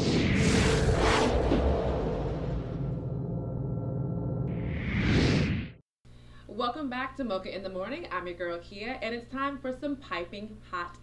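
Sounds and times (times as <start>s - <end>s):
whoosh transition effect: 0.0s - 5.8s.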